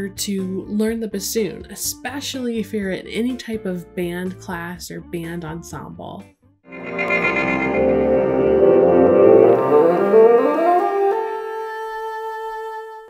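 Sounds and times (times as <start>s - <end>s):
musical intro sting chord: 6.7s - 11.2s.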